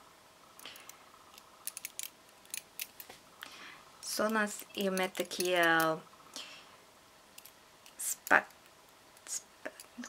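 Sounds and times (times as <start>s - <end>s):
metal rings clicking together: 0.6s - 3.1s, 4.0s - 6.0s, 7.4s - 8.8s, 9.7s - 10.0s.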